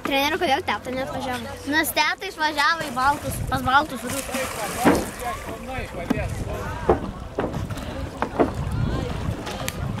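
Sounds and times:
faint distant voices: 0.1s - 10.0s
wind rumbling on microphone: 2.9s - 10.0s
sharp knocks or splashes: 4.0s - 8.8s.

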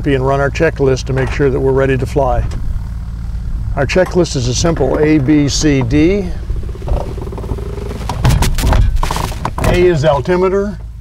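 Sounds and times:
low plane engine drone: 0.0s - 11.0s
glider canopy knocks and clatter: 4.0s - 10.4s.

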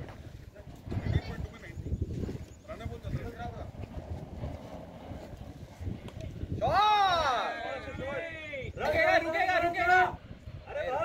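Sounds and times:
distant indistinct voices: 0.0s - 11.0s
wind rumble on microphone: 0.0s - 11.0s.

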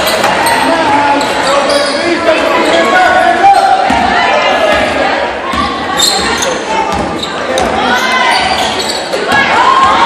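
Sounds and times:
crowd chatter and shouting: 0.0s - 10.0s.

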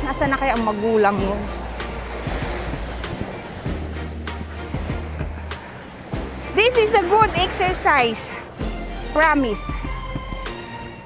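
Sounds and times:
surf washing on shore: 0.0s - 10.0s
wind buffeting microphone: 0.0s - 11.0s.

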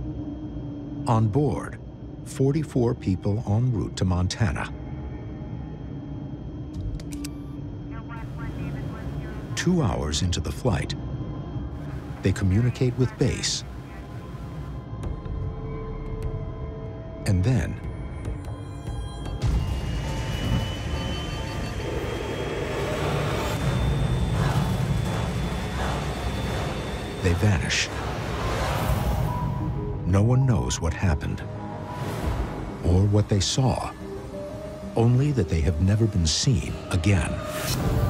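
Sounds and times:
eerie high sustained music: 0.0s - 38.0s
propeller plane engines droning: 6.8s - 14.9s, 19.7s - 37.5s.

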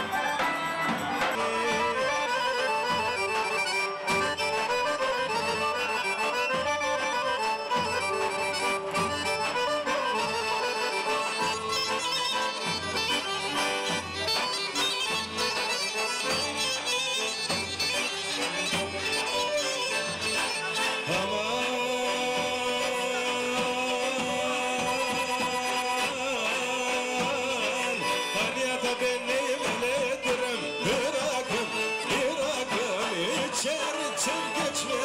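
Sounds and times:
accordion: 0.0s - 35.0s
bagpipe melody: 0.0s - 35.0s.

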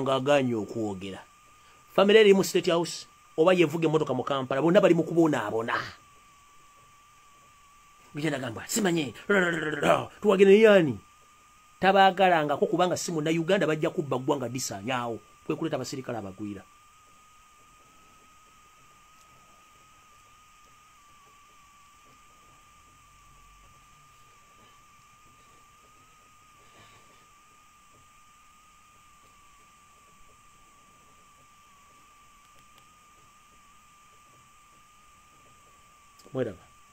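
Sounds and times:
thin high-pitched whine: 0.0s - 36.9s.

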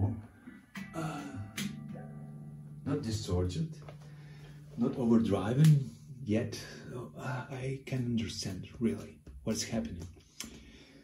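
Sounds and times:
electric guitar notes: 0.4s - 6.3s
low amplifier hum: 0.9s - 9.2s.

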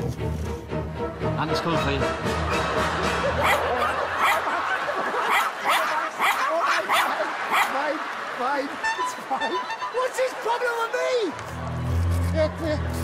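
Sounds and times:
background music: 0.0s - 4.7s
small dog yapping: 5.3s - 7.7s.

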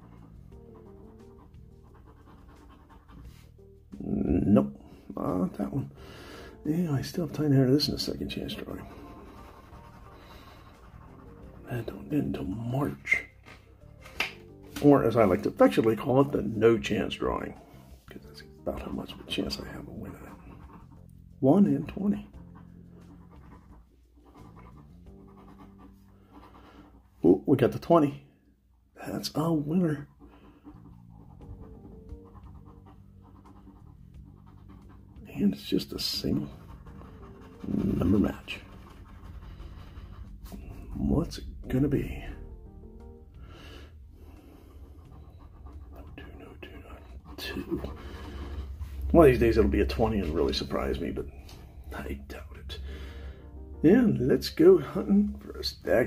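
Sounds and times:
fingernail scraping scratch card: 0.0s - 3.6s, 8.3s - 14.4s, 18.7s - 21.2s, 21.8s - 27.0s, 30.1s - 41.0s, 44.2s - 46.3s, 47.0s - 48.7s
faint music: 0.0s - 56.0s.

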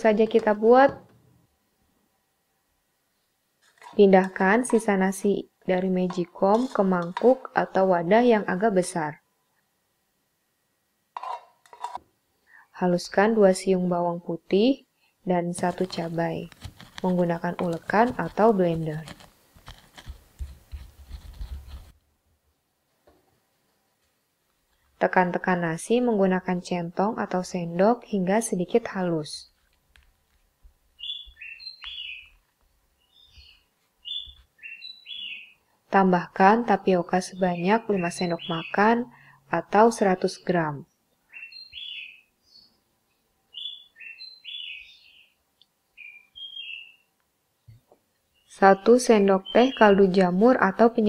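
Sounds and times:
pestle crushing in wooden mortar: 16.5s - 21.8s
small songbird chirping: 31.0s - 32.4s, 33.0s - 35.6s, 37.0s - 39.0s, 41.3s - 42.8s, 43.5s - 47.1s.

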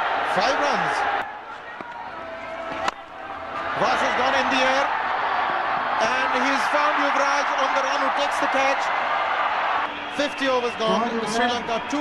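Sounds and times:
stadium crowd murmur: 0.0s - 12.0s
commentator speaking: 10.2s - 12.0s.

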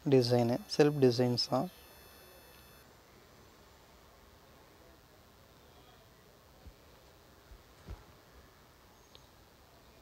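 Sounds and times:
faint high whine: 0.0s - 10.0s
faint room hiss: 0.0s - 10.0s.

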